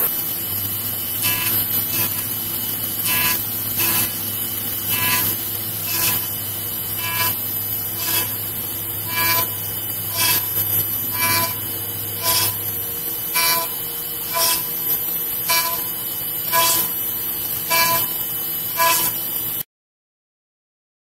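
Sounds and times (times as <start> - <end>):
bit cutting wood buzzing: 0.0 - 19.6
router spindle whining: 0.0 - 19.6.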